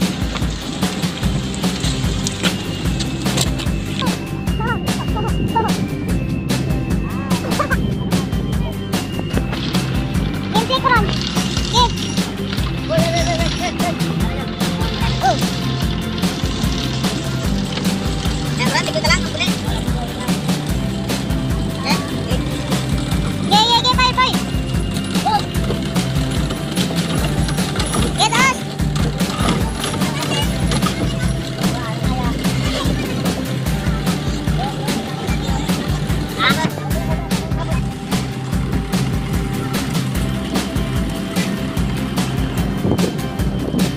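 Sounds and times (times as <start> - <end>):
boat engine running: 0.0 - 43.9
music: 0.0 - 43.9
voices: 0.0 - 43.9.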